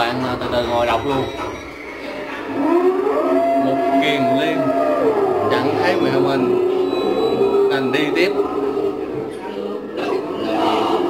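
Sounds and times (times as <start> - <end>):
eerie wailing tone: 0.0 - 11.0.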